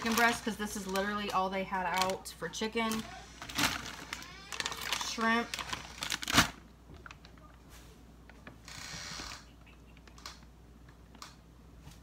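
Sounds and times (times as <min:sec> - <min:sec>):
plastic rustle: 0:00.0 - 0:08.0.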